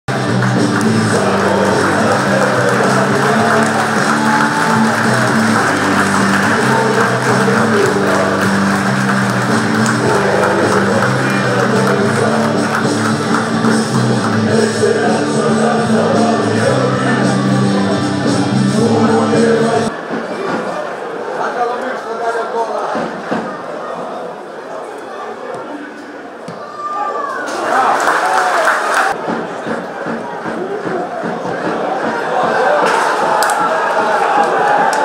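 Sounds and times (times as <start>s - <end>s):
crowd noise: 0.0s - 35.0s
loud music with low notes: 0.1s - 19.9s.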